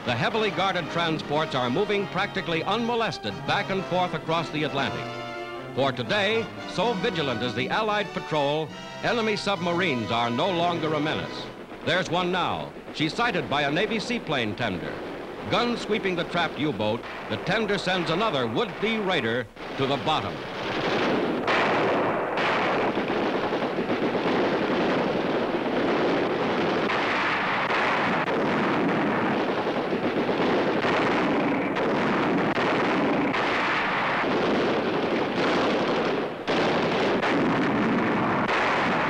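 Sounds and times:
shells bursting: 0.0s - 39.0s
deck guns firing: 0.2s - 39.0s.

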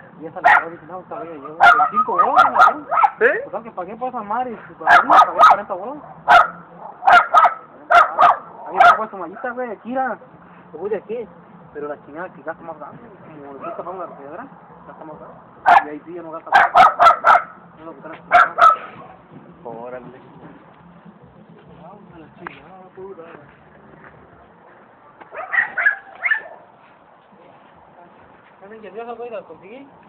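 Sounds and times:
dog barking: 0.4s - 0.8s, 1.4s - 3.3s, 4.8s - 9.5s, 13.6s - 14.4s, 15.6s - 15.9s, 16.5s - 17.6s, 18.3s - 19.2s, 25.3s - 26.8s.

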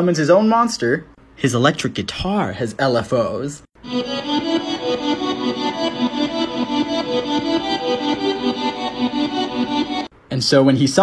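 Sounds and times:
wobbling electric guitar notes: 3.9s - 10.1s.

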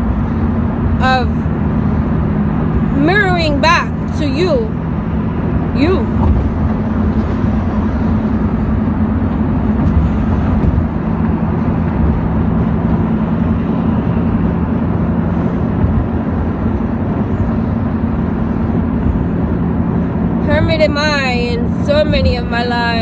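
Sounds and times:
car engine and road noise: 0.0s - 23.0s.

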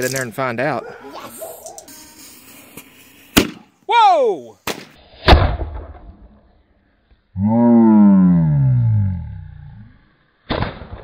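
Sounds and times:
firework bang: 3.3s - 3.6s, 4.6s - 6.5s, 10.5s - 11.0s.

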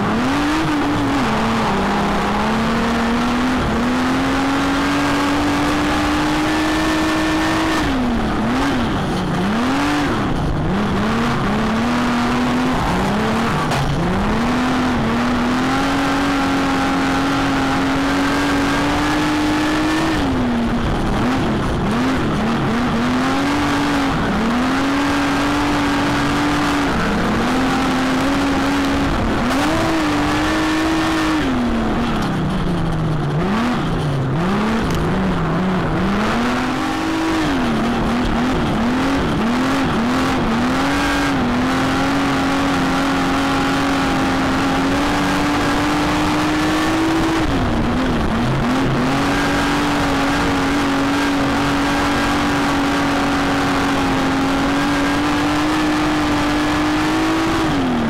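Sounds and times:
racing car engine revving: 0.0s - 58.0s.

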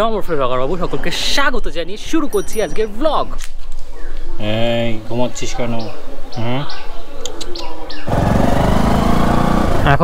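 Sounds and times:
bird chirps: 2.2s - 4.4s, 5.4s - 9.2s
motorcycle engine running: 8.1s - 10.0s.

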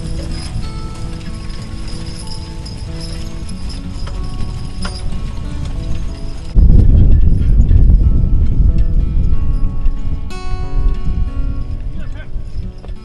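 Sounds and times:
background music: 0.0s - 13.0s
horse hoofbeats: 0.0s - 13.0s.

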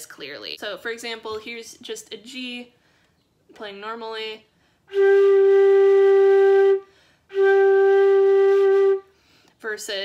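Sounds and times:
flute playing long note: 4.9s - 9.1s.

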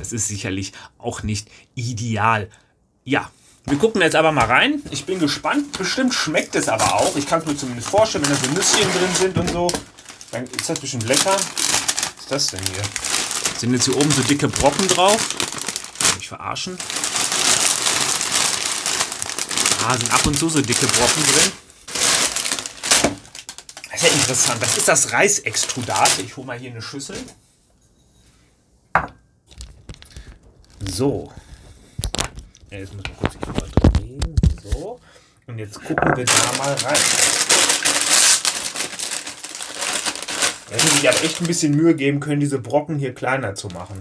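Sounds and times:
plastic bag crinkling: 4.8s - 26.4s, 29.5s - 34.1s, 36.2s - 41.9s
dry cereal rustling in bag: 4.9s - 26.4s, 36.3s - 41.9s.

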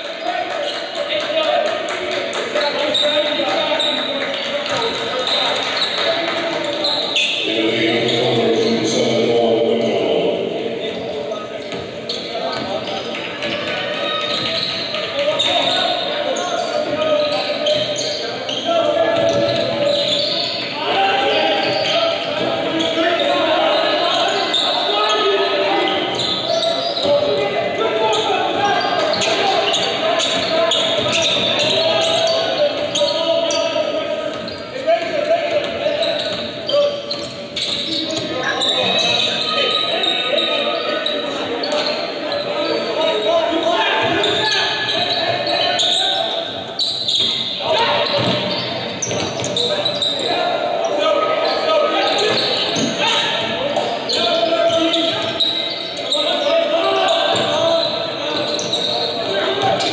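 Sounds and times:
crowd chatter: 0.0s - 59.9s.

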